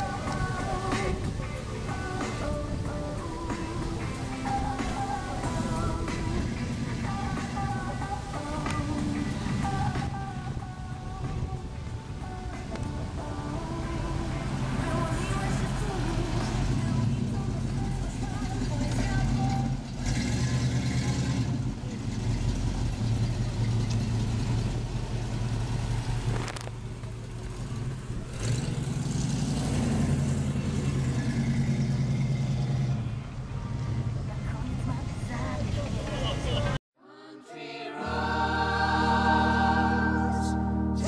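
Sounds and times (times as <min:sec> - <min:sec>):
car engine running: 0:13.2 - 0:36.8.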